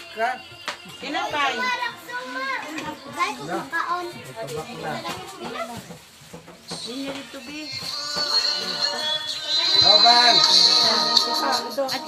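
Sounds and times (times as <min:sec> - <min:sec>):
children talking and calling out: 0:01.0 - 0:06.0.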